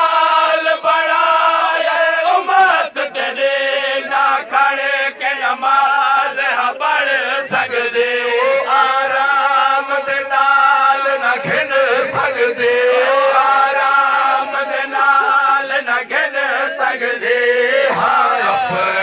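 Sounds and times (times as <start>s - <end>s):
men chanting a lament in unison: 0.0s - 19.0s.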